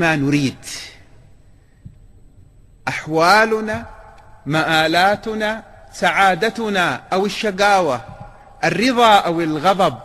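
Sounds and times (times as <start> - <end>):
man speaking: 0.0 - 1.1, 2.8 - 10.0.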